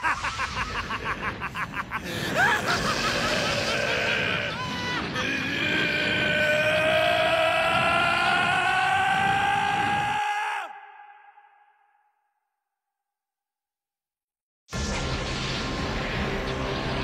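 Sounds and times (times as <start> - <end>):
creature's rising howl: 2.3 - 10.7.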